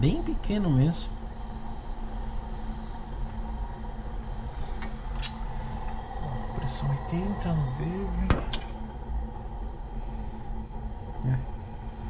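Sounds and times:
workshop background rumble: 0.0 - 10.5
faint constant hum: 0.0 - 12.0.

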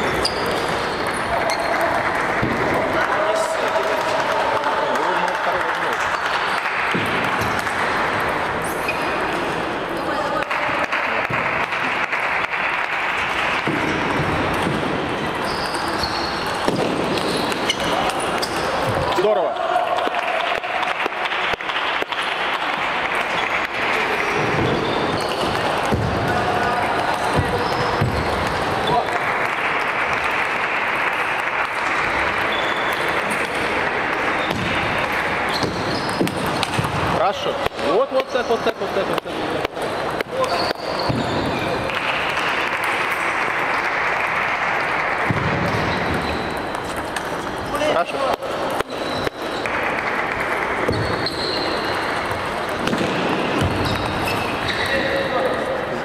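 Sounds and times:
murmur of voices: 0.0 - 56.0
table tennis balls clicking: 45.2 - 54.9.

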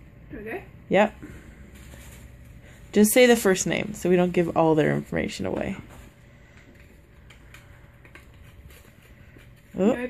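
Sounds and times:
quiet room hum: 0.0 - 10.0
paper rustling: 4.4 - 10.0.

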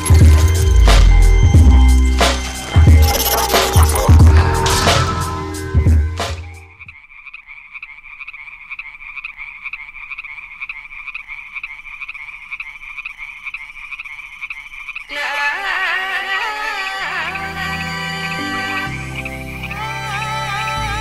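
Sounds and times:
electronic intro music: 0.0 - 6.9
frogs calling: 2.4 - 5.5, 6.6 - 21.0.

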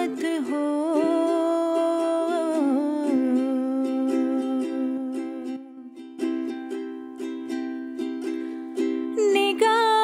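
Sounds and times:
strummed ukulele: 0.0 - 10.0.

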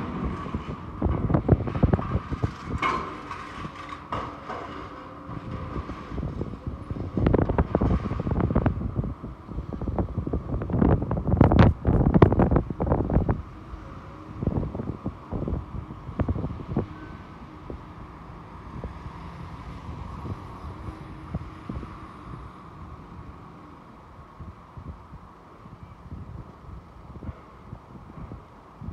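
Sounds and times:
metal clanking and crunching: 0.0 - 8.5
excavator running: 0.0 - 24.0.

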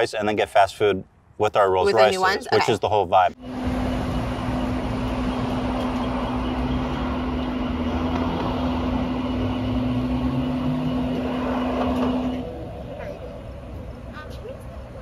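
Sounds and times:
car road and engine noise: 0.0 - 15.0.

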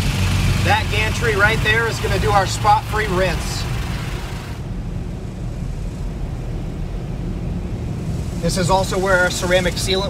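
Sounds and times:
car wash machinery rumble: 0.0 - 10.0
water spraying on car: 7.7 - 10.0.

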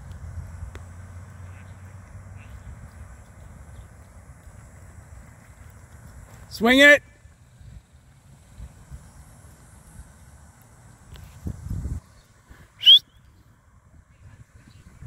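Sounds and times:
wind rumble on microphone: 0.0 - 6.4, 7.1 - 15.0
sharp rising chirp: 12.8 - 13.3.

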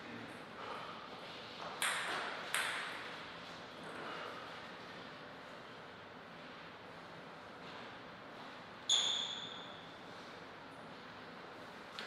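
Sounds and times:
table tennis ball bouncing: 1.8 - 3.1.

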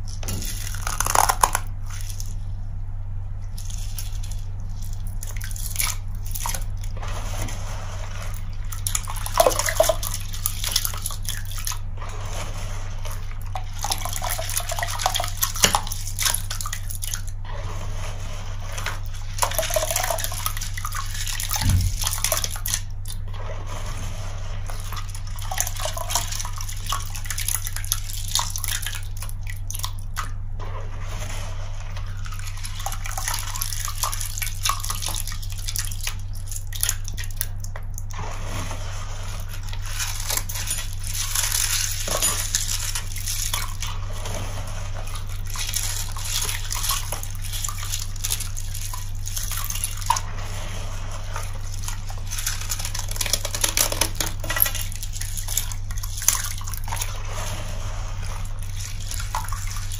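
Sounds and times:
crystals crackling and clicking: 0.0 - 2.4
water dripping and splashing: 0.0 - 2.4, 3.5 - 7.0, 8.3 - 11.9, 13.3 - 17.4, 18.8 - 23.3, 24.7 - 30.4, 32.1 - 38.1, 39.4 - 50.3, 51.2 - 59.9.

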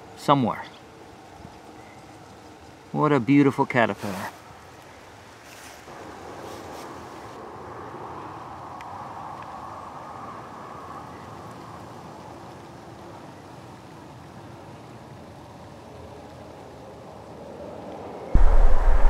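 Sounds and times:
distant highway traffic hum: 0.0 - 19.0
loud low rumble: 18.4 - 19.0.

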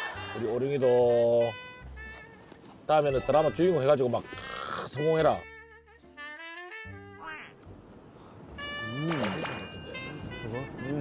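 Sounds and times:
background music: 0.0 - 11.0
ringing sparkle tone: 3.0 - 3.8, 9.1 - 10.6.

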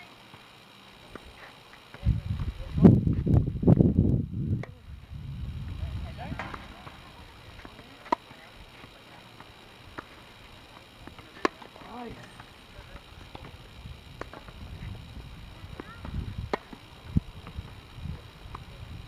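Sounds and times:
racket striking tennis ball: 4.6 - 4.8, 7.6 - 10.2, 11.0 - 12.5, 14.2 - 14.6, 15.8 - 16.8.

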